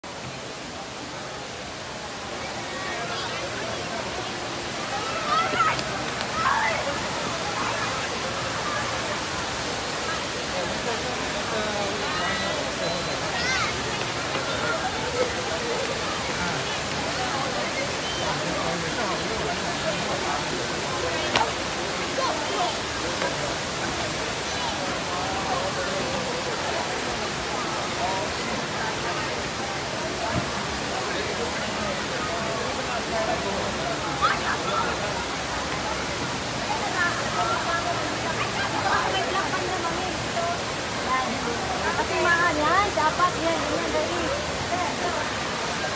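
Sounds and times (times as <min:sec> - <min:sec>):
crowd chattering: 0:00.0 - 0:45.9
indoor waterfall rushing: 0:00.0 - 0:45.9.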